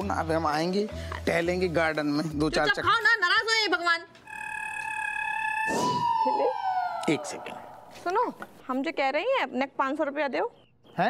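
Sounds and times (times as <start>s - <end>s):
electronic tone sliding downward: 4.3s - 8.0s.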